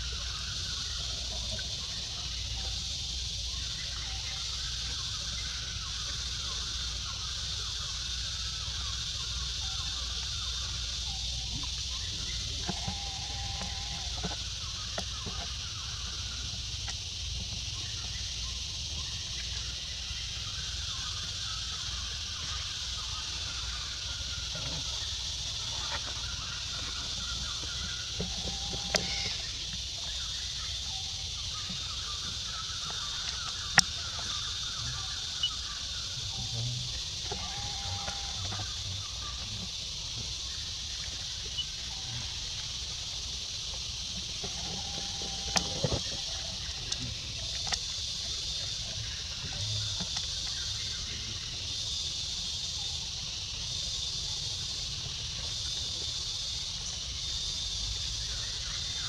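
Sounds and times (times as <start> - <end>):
steady high-pitched hiss: 0.0 - 59.0
short animal calls: 12.4 - 14.4, 26.9 - 29.6, 37.2 - 39.8.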